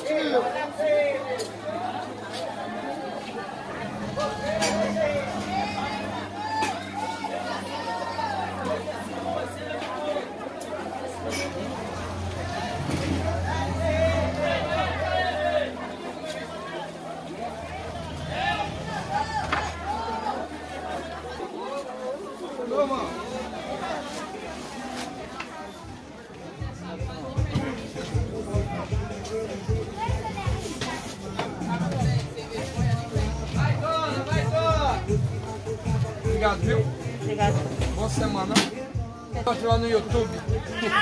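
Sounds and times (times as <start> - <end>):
people chattering: 0.0 - 41.0.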